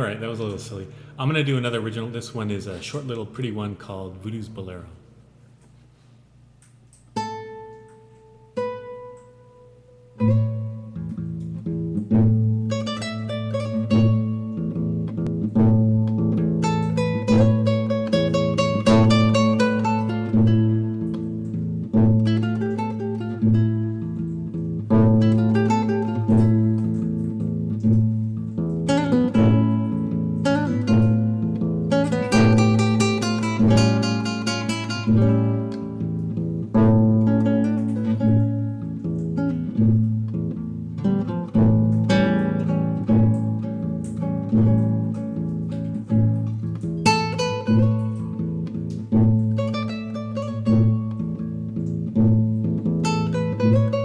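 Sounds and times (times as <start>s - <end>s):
fingerstyle classical guitar: 7.0s - 54.0s.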